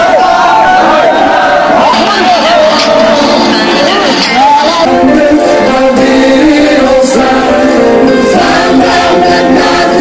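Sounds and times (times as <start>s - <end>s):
vocal group singing in harmony: 4.4s - 10.0s.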